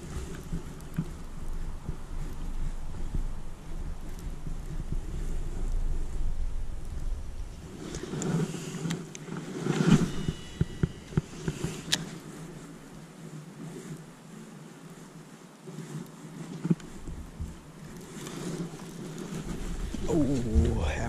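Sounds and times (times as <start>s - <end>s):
wind buffeting microphone: 0.0s - 14.2s, 16.7s - 21.0s
jacket sleeve rustle: 7.1s - 21.0s.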